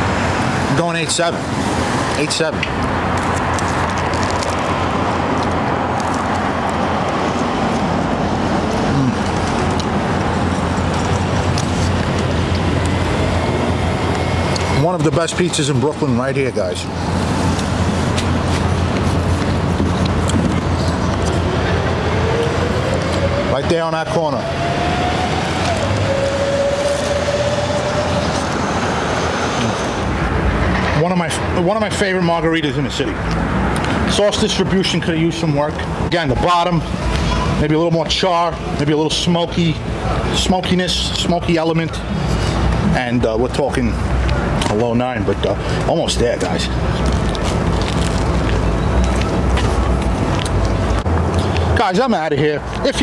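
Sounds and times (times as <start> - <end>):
cars passing: 0.0 - 53.0
road noise rumble: 0.0 - 53.0
vehicle whine: 0.0 - 53.0.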